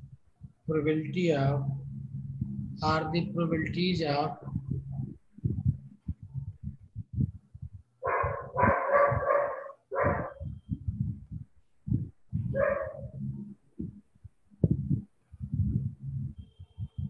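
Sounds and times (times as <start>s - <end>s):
dog barking: 8.0s - 10.5s, 12.5s - 13.2s.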